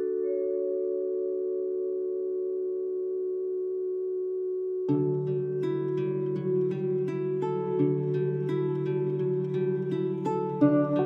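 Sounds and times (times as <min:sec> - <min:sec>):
soft sustained chord: 0:00.0 - 0:11.0
plucked-string music: 0:04.9 - 0:11.0.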